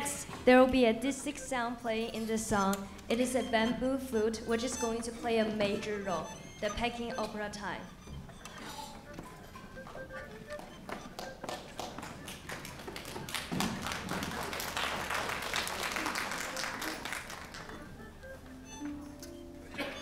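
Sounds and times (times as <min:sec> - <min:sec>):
audience applause: 0:10.6 - 0:18.1.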